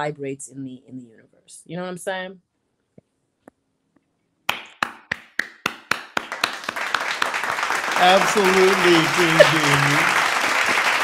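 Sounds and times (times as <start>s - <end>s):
hand clapping: 4.5s - 11.0s.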